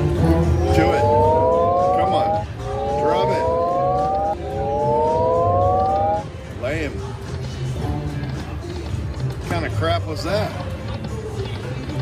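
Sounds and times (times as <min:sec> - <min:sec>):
slot machine rising tone sweeps: 0:00.0 - 0:06.5
chirping electronic blips: 0:00.6 - 0:06.4.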